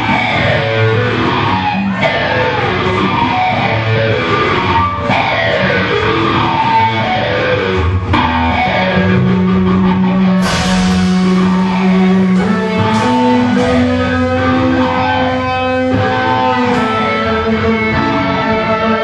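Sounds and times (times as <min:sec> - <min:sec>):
bass: 0:00.0 - 0:19.0
electric guitars: 0:00.0 - 0:19.0
drum kit: 0:10.2 - 0:17.3.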